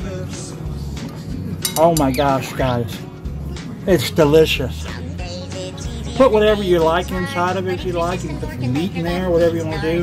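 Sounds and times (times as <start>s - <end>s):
background music: 0.0s - 10.0s
plate clinking: 1.6s - 2.4s
man talking: 1.7s - 3.1s, 3.8s - 4.9s.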